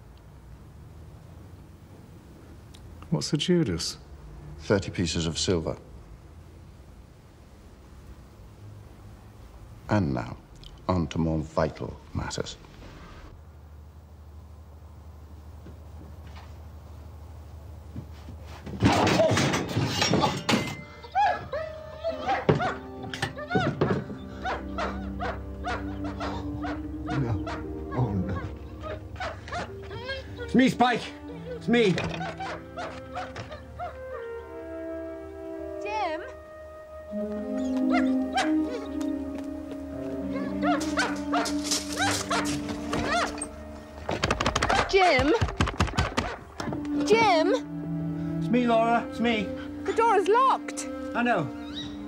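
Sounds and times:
hanging saws clattering: 0:18.7 - 0:21.1
film score music: 0:21.0 - 0:52.0
dog whimpering: 0:21.1 - 0:30.5, 0:37.5 - 0:39.1, 0:40.2 - 0:43.5.

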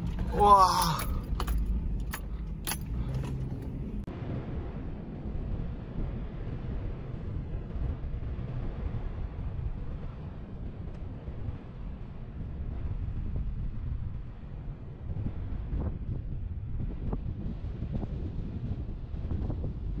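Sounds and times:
keys jangling: 0:00.0 - 0:03.9
engine rumbling low: 0:00.0 - 0:20.0.

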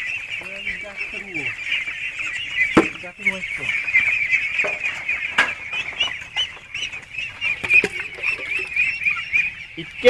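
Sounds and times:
ducklings peeping: 0:00.0 - 0:10.0.

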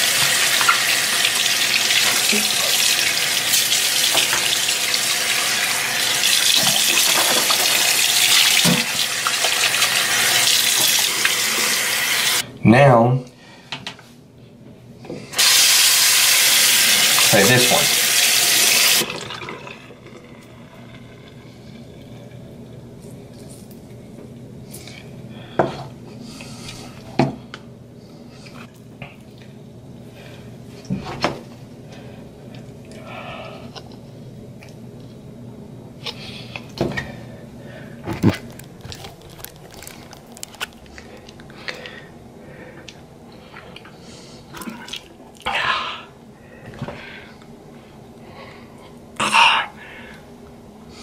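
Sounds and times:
steady low hum: 0:19.1 - 0:51.0.

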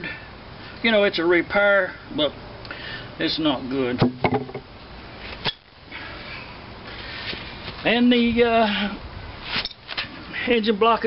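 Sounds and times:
metal gas tank knocking and clinking: 0:04.0 - 0:04.6.

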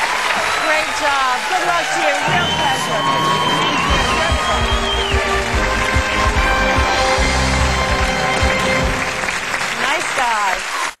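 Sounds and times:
audience applauding: 0:00.0 - 0:11.0
voices: 0:00.5 - 0:05.7
game show music: 0:00.7 - 0:10.6.

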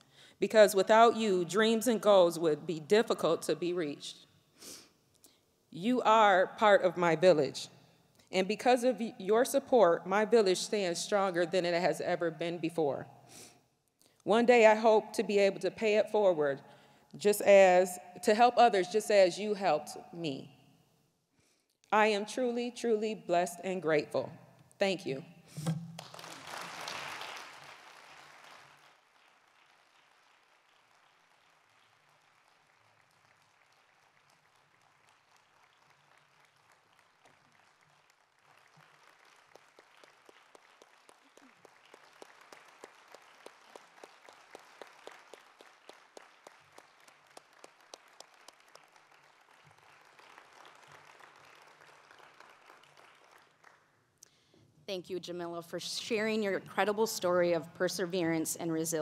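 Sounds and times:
audience applauding: 0:26.0 - 0:53.8.

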